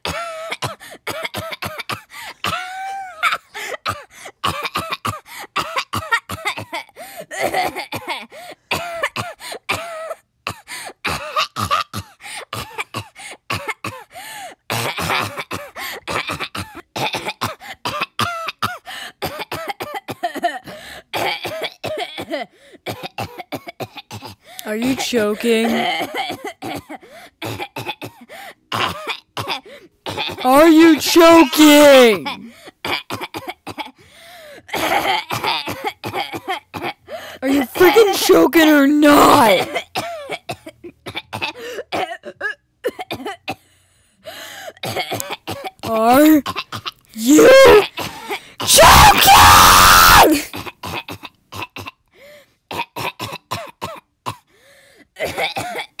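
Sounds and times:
person coughing and gagging: 0.0s - 34.0s, 34.7s - 43.6s, 44.8s - 52.0s, 52.7s - 54.5s, 55.2s - 56.0s
distorted yell: 48.7s - 50.4s.

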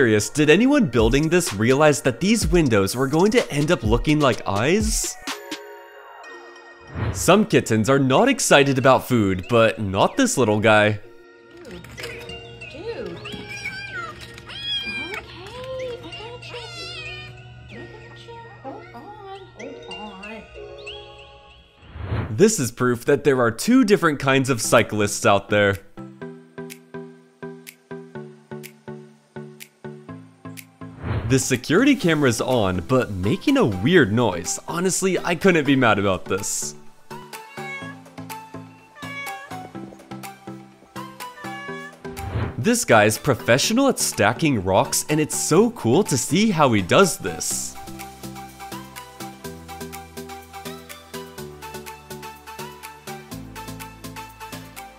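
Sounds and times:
background music: 0.0s - 54.9s
kitten meowing: 13.1s - 15.2s, 37.2s - 38.1s, 38.9s - 39.9s, 41.1s - 42.1s.

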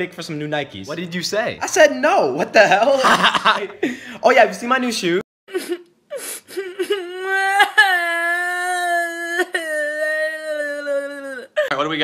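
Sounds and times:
person whimpering sobs: 5.5s - 12.0s
person mock wailing: 6.8s - 11.7s.

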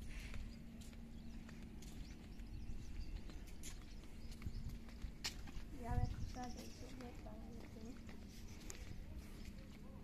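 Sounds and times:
footsteps on concrete: 0.0s - 10.0s
steady low rumble: 0.0s - 10.0s.

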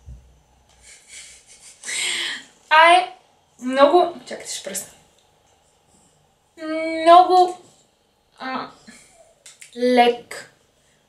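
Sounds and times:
soft low thump: 0.0s - 0.4s
breathy laughter: 0.8s - 2.4s.

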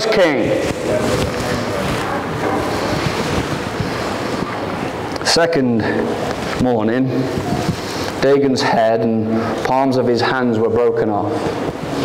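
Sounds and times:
microphone rushing noise: 0.0s - 8.0s
person speaking: 0.0s - 11.7s.

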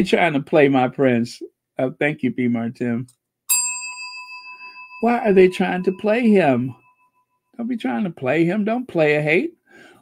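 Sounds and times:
bell-like chime ringing: 3.5s - 7.6s.

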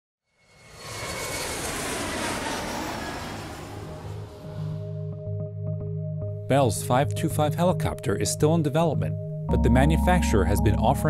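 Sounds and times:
aircraft engine roar: 0.4s - 5.4s.

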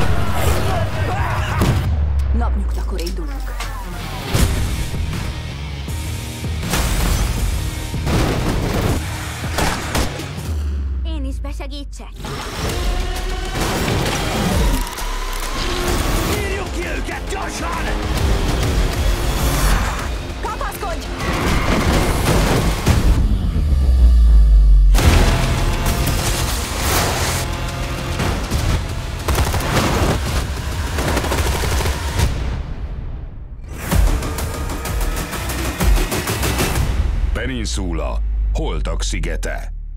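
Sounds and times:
action trailer music: 0.0s - 39.9s
gunfire: 28.2s - 32.4s.

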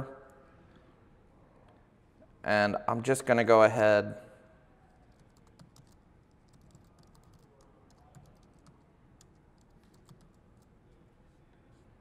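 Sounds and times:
typing on laptop keyboard: 5.0s - 10.8s.

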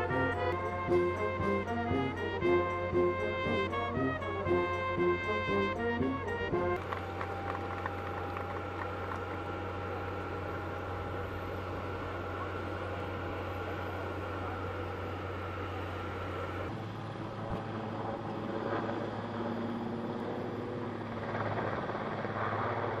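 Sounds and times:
helicopter turbine whine and rotor: 0.0s - 23.0s.

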